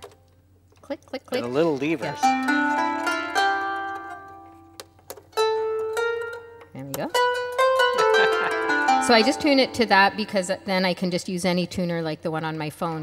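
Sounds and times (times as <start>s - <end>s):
plucked zither strings: 1.3s - 4.6s, 5.3s - 10.9s.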